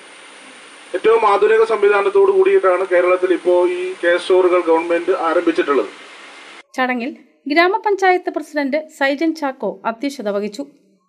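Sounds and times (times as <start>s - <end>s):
man speaking into a microphone: 1.0s - 6.0s.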